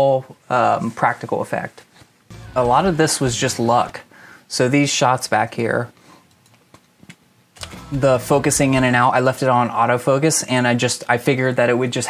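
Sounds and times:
low rumble: 2.3s - 4.2s, 7.6s - 9.2s.

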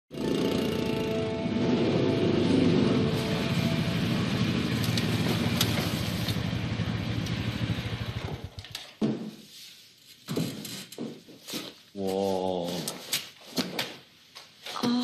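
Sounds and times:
small vehicle engine running: 0.1s - 8.8s.

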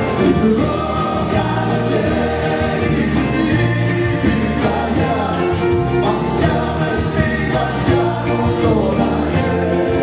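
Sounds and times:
band playing: 0.0s - 10.0s
man singing: 0.0s - 10.0s
steady bass line: 0.0s - 10.0s.

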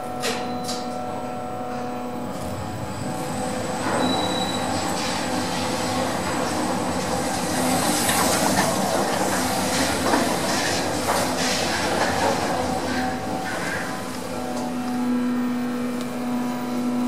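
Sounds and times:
lift mechanical rumble: 0.0s - 17.0s
high squeal: 4.0s - 4.8s.

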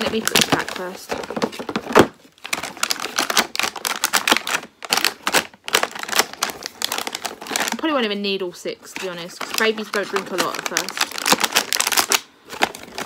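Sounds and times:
plastic bottles handled in box: 0.0s - 7.8s, 8.9s - 13.0s.

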